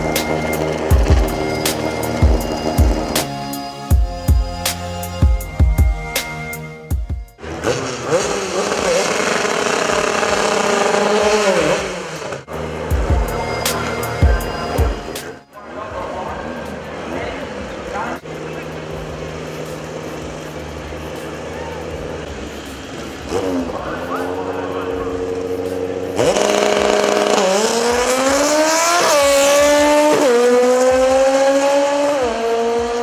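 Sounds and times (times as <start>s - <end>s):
race engine revving: 0.0s - 6.7s, 7.4s - 33.0s
background music: 0.0s - 7.4s, 12.4s - 33.0s
voices: 12.5s - 27.1s.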